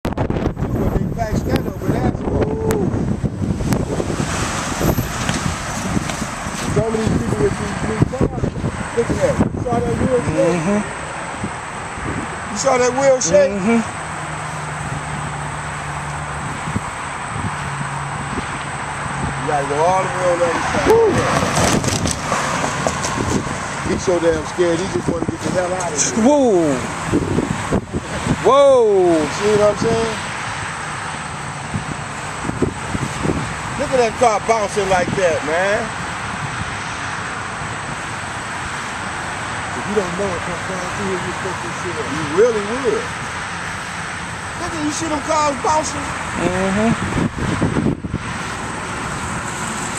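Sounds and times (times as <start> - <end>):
road traffic noise: 0.0 - 49.9.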